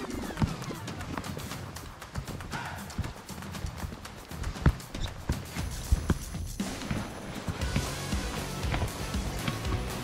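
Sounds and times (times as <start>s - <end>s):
ski steps crunching on snow: 3.3s - 10.0s.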